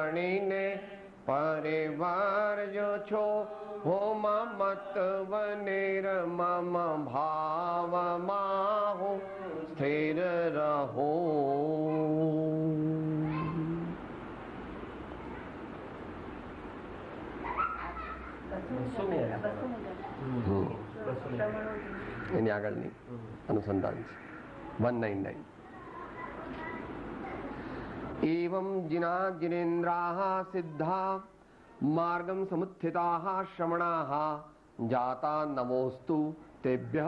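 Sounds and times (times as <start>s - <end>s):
man chanting melodically: 28.2s - 37.0s.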